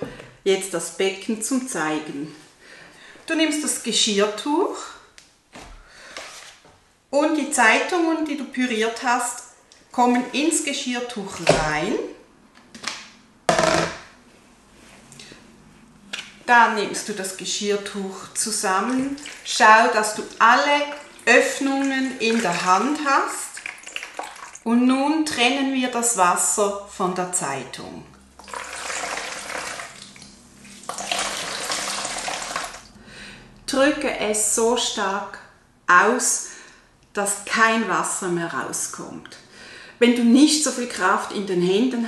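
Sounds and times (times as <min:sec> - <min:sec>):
water splashing into plastic bowl: 0:18.7 - 0:24.7, 0:28.4 - 0:32.9.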